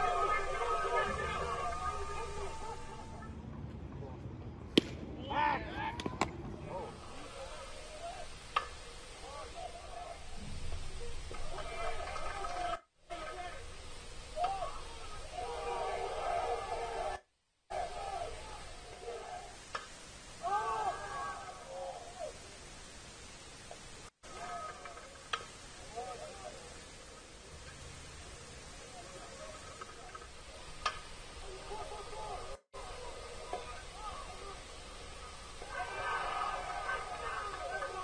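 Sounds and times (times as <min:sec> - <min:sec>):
spectators shouting: 0:00.0 - 0:03.3, 0:04.8 - 0:08.4, 0:14.3 - 0:19.6, 0:20.4 - 0:22.4, 0:31.6 - 0:38.0
background noise: 0:00.0 - 0:38.0
baseball bat crack: 0:04.6 - 0:07.2.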